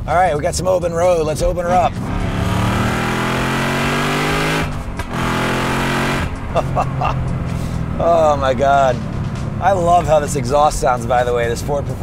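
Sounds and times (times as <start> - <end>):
car engine at full throttle: 1.4 - 12.0.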